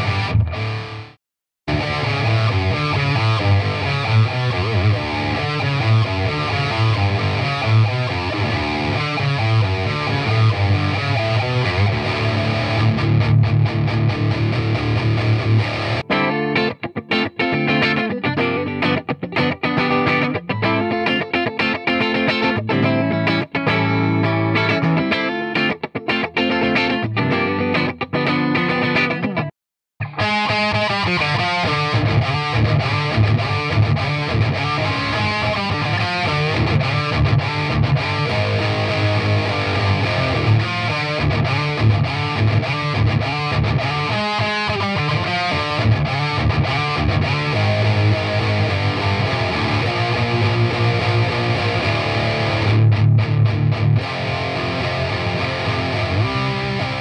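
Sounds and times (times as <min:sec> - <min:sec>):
distorted electric guitar: 0:00.0 - 0:57.0.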